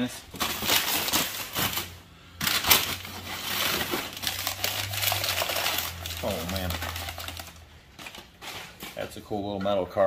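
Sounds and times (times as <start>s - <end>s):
plastic wrapping crinkling: 0.0s - 9.4s.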